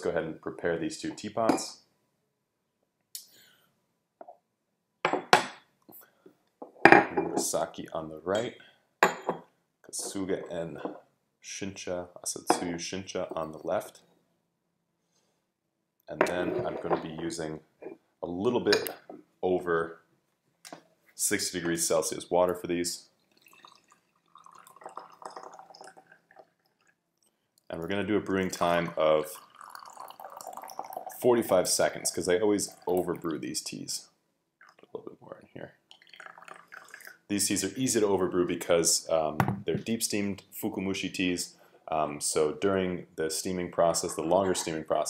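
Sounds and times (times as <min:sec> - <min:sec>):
clay teapot clinking: 0:08.3 - 0:11.0, 0:12.4 - 0:13.6, 0:18.7 - 0:19.2, 0:23.4 - 0:26.9, 0:28.3 - 0:33.7, 0:36.0 - 0:37.2, 0:43.9 - 0:45.0.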